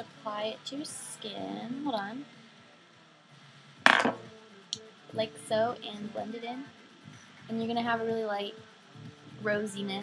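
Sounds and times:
sharp knock: 3.9 - 4.3.

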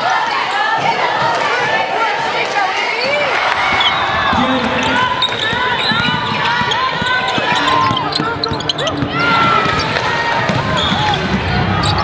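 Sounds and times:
crowd chatter: 0.0 - 12.0
sneaker squeaks: 3.0 - 12.0.

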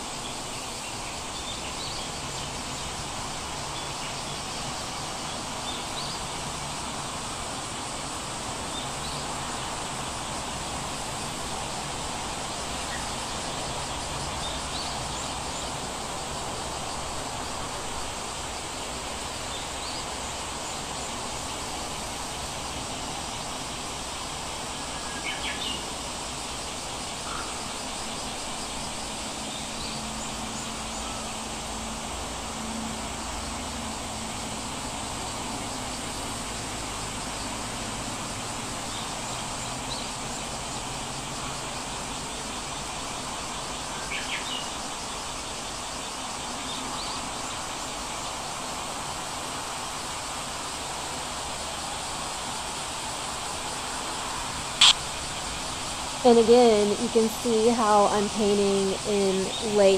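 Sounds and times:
steady background hiss: 0.0 - 59.9.

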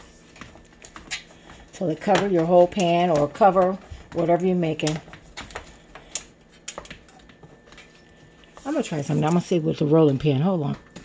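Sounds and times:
hands pressing dough: 0.0 - 7.9.

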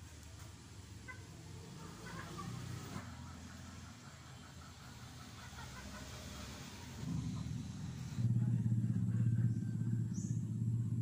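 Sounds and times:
engine running: 0.0 - 11.0.

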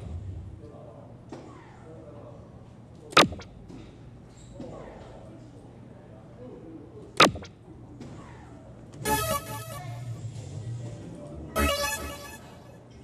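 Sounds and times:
electronic dartboard chime: 3.2 - 3.5, 7.2 - 7.5, 9.1 - 10.0, 11.6 - 12.7.

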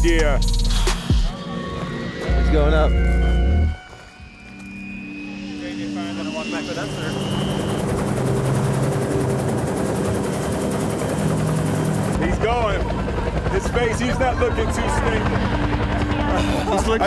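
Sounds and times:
bass-heavy music: 0.0 - 4.3
helicopter turbine and rotor: 0.4 - 17.0.

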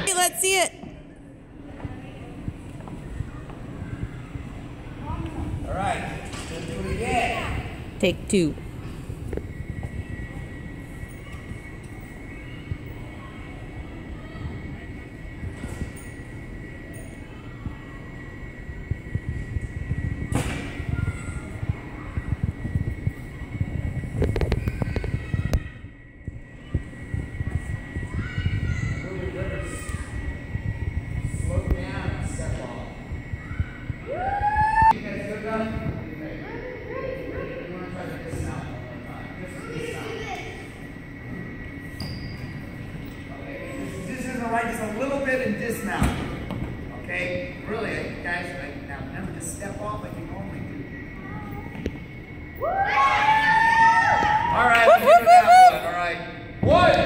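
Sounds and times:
children's voices and chatter: 1.0 - 5.7, 9.2 - 15.6, 16.2 - 31.8, 36.3 - 41.8.

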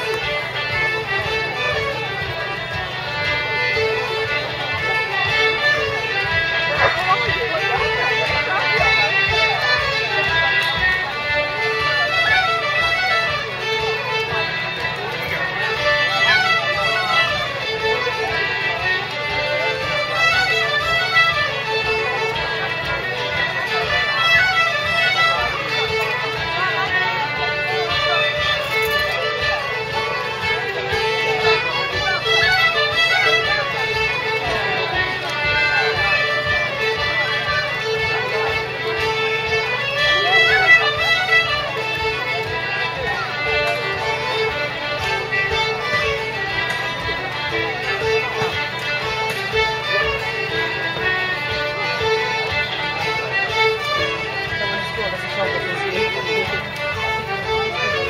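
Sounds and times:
concertina: 0.0 - 58.0
fiddles: 0.0 - 58.0
harp: 0.0 - 58.0
plucked mandolin and guitar: 0.0 - 58.0.

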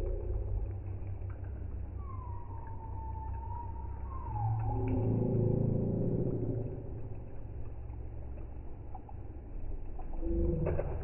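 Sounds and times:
long drawn-out tone: 0.0 - 8.2, 10.0 - 11.0
deep rumble: 0.0 - 11.0.

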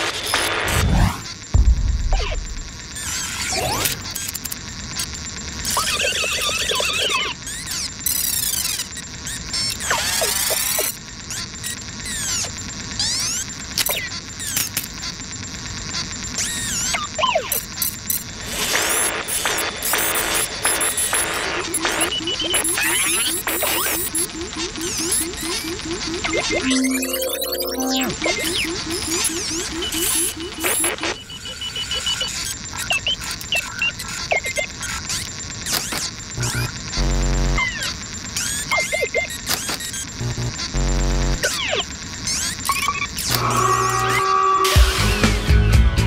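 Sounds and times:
cartoon music: 26.6 - 28.5.

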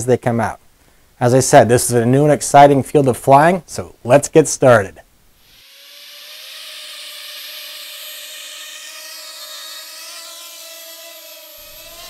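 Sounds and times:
drone propellers buzzing: 5.5 - 12.0.

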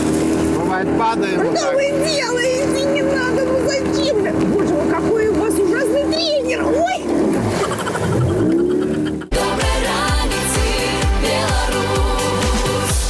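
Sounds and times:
motorboat engine droning: 0.0 - 13.0.

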